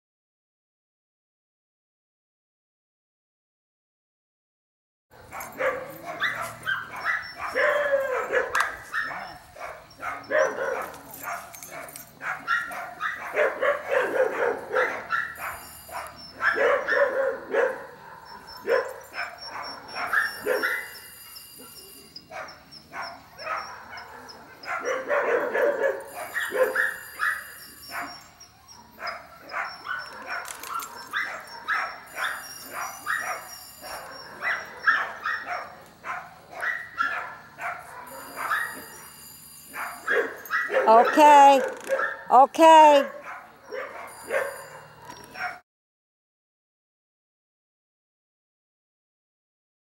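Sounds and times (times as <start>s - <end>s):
dog barking and yipping: 5.2s - 45.6s.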